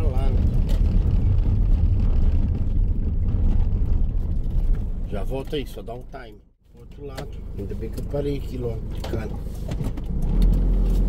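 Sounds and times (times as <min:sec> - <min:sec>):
diesel van engine rumble: 0:00.0 - 0:11.0
road noise: 0:00.0 - 0:11.0.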